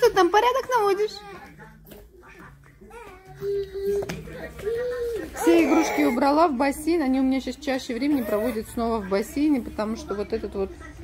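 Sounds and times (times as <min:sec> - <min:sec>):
baby whiny crying: 0:02.9 - 0:06.3.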